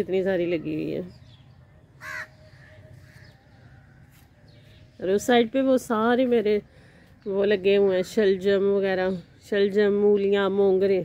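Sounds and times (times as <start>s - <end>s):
bird harsh call: 2.0s - 3.9s.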